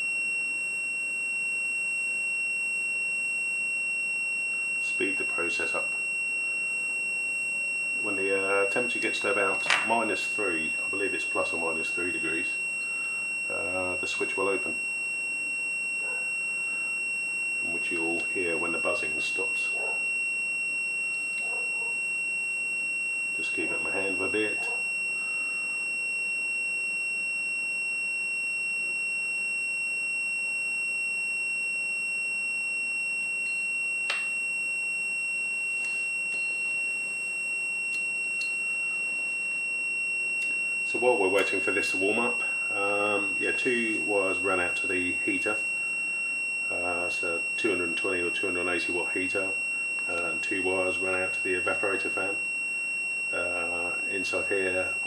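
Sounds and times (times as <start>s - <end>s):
multimeter continuity buzzer tone: 0.0s - 55.0s.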